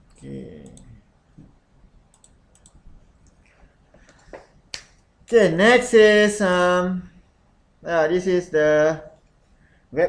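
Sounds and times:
faint sharp clicks: 2.1 - 5.0.

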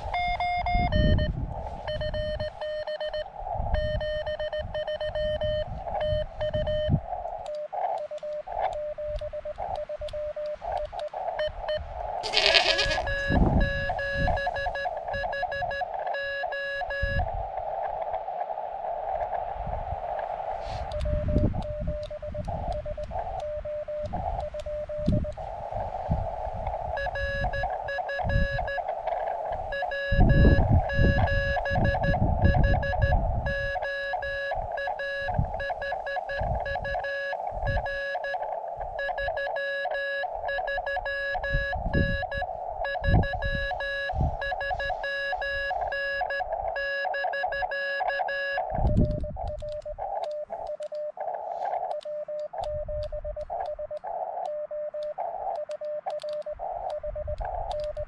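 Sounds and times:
morse code tone: 0.0 - 17.3, 20.7 - 25.4, 26.8 - 58.0.

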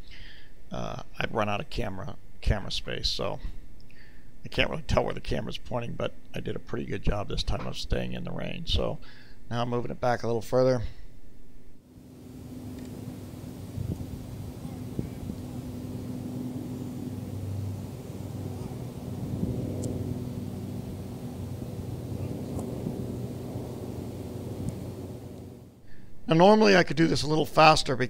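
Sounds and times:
distant engine hum: 11.8 - 26.0.

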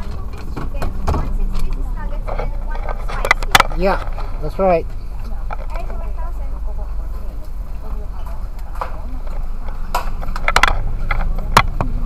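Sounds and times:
car engine idling: 0.0 - 12.0
faint voices: 0.0 - 12.0.

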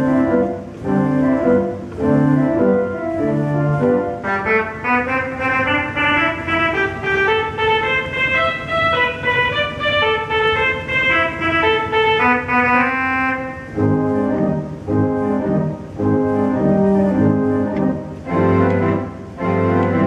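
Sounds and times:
pipe organ playing a march: 0.0 - 20.0.

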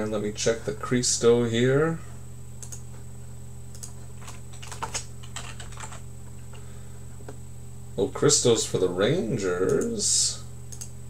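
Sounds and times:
steady low hum: 0.0 - 11.0
computer keyboard typing: 3.7 - 6.0.

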